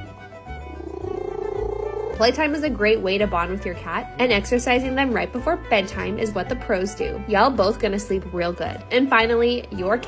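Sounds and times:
cat growling: 0.6 - 2.4.

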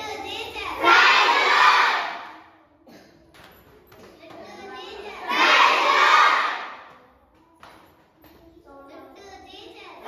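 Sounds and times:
children shouting: 0.0 - 2.6, 4.3 - 7.0.

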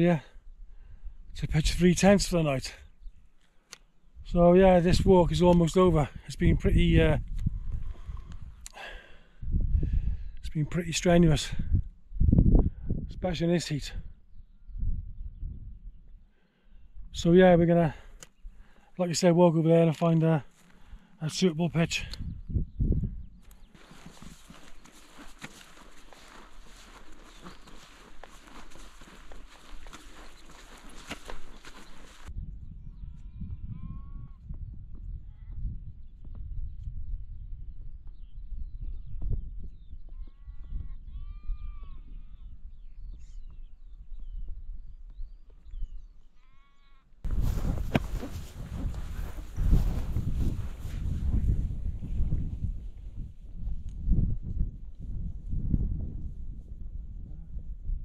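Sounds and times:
wind on microphone: 4.2 - 8.6, 9.4 - 10.4, 11.2 - 13.3, 14.0 - 16.2, 22.0 - 46.1, 47.2 - 58.0
sheep bleating faintly: 40.1 - 42.4.

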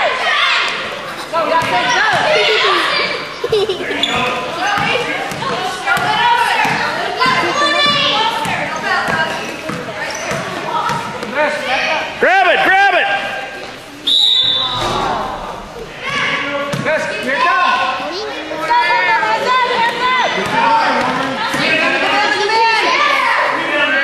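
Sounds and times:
whistle blast: 14.0 - 16.3.

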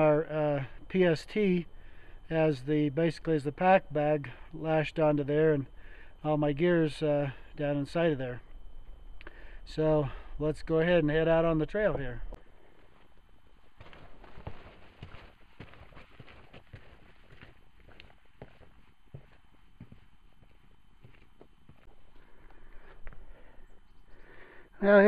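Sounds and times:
footsteps on rocky dirt trail: 12.7 - 23.6.

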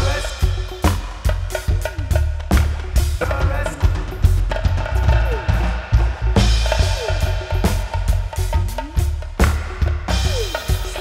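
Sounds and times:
deep bass line: 0.0 - 11.0
drum kit playing: 0.0 - 11.0.

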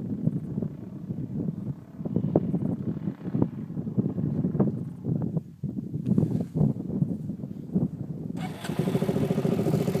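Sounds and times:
dirt bike engine chugging: 8.4 - 10.0.

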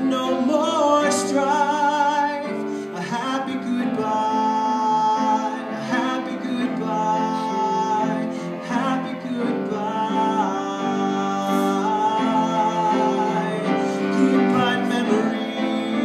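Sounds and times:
grand piano playing slow song: 0.0 - 16.0
person singing long notes: 0.0 - 16.0.

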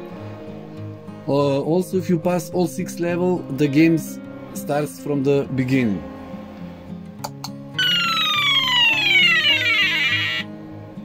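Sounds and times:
soft guitar music: 0.0 - 11.0
electronic buzzer tone gliding down: 7.8 - 10.5.

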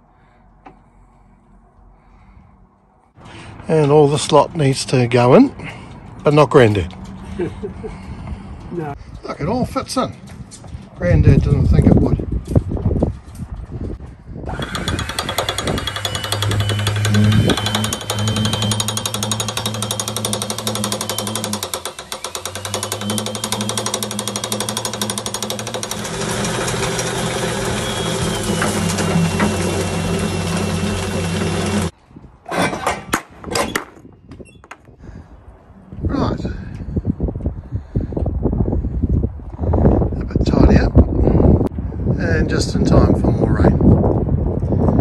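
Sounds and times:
vacuum cleaner running: 14.5 - 31.9.

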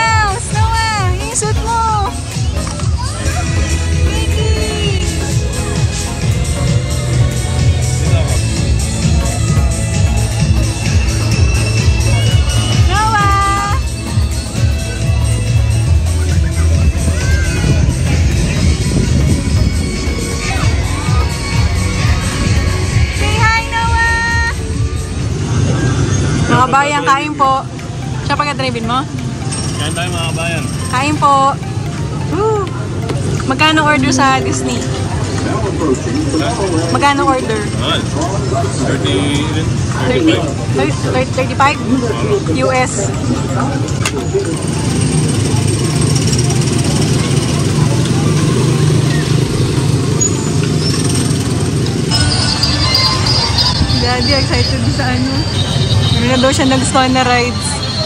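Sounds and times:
music: 0.0 - 58.0
small car engines droning: 0.0 - 58.0.

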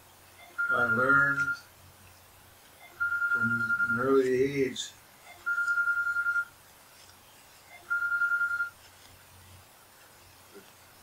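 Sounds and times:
electronic telephone ringing: 0.4 - 1.7, 2.8 - 4.3, 5.3 - 6.6, 7.7 - 8.8.

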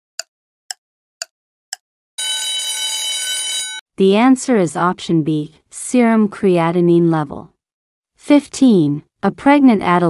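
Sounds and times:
ringing alarm tone: 2.2 - 3.8.

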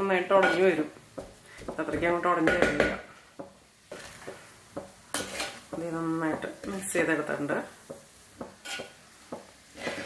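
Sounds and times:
spatula scraping clay pot: 5.1 - 5.7, 8.6 - 9.0.

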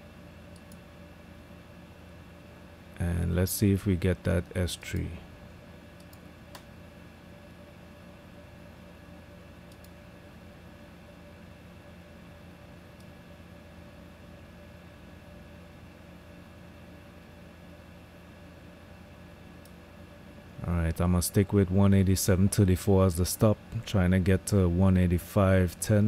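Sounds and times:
low electrical hum and hiss: 0.0 - 26.0
computer mouse clicks: 0.5 - 0.8, 6.0 - 6.7, 9.7 - 10.0.

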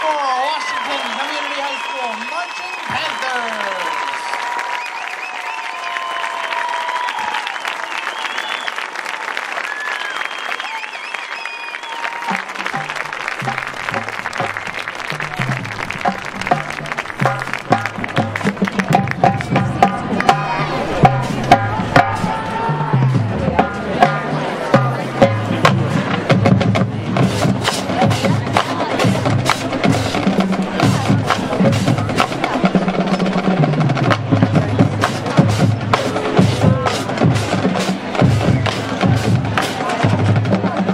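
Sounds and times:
crowd applause: 0.0 - 40.9
drumline cadence: 10.0 - 40.9.

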